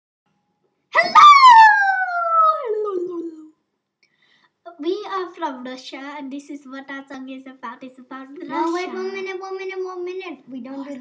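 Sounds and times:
woman howling and squealing: 0:01.0 - 0:03.4.

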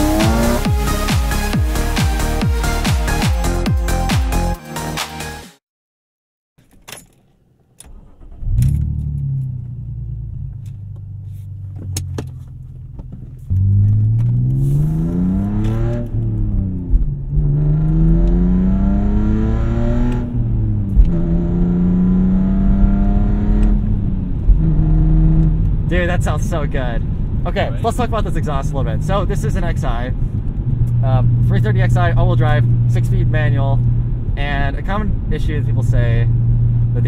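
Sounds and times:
car engine revving through gears: 0:00.0 - 0:02.4, 0:07.8 - 0:26.0.

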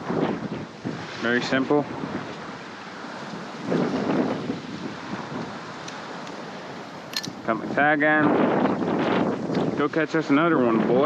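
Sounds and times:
small surf washing: 0:00.0 - 0:11.0
wind buffeting microphone: 0:00.0 - 0:11.0.

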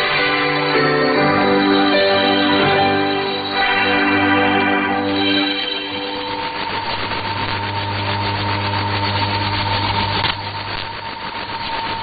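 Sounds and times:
low hum: 0:00.0 - 0:12.0
radio static hiss: 0:00.0 - 0:12.0
thin radio whistle: 0:00.0 - 0:12.0.

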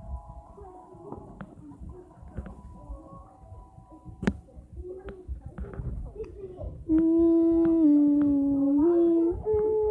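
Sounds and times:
person humming a held note: 0:06.9 - 0:09.9.

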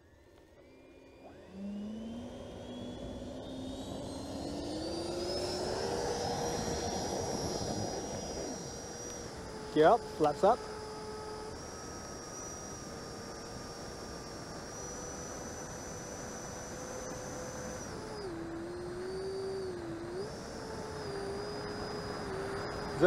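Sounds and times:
model jet fan whine: 0:00.0 - 0:23.0.

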